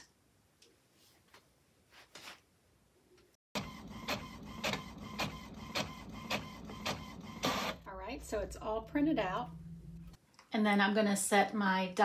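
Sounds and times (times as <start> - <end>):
printer feed motor running: 3.6 - 7.9.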